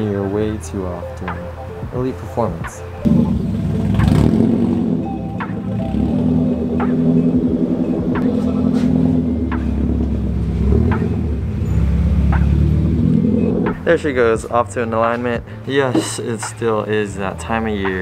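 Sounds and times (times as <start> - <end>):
faint background music: 0.0 - 18.0
car engine rumbling: 2.8 - 15.7.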